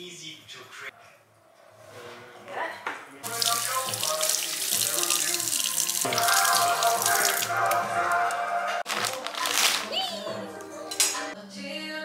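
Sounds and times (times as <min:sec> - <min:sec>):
faucet water running into sink: 0:03.2 - 0:07.5
background music: 0:03.2 - 0:12.0.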